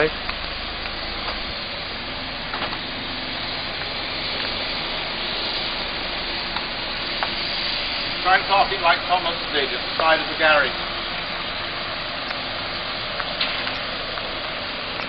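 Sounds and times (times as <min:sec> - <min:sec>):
tyres crackling over grit: 0:00.0 - 0:15.0
van engine idling: 0:00.0 - 0:15.0.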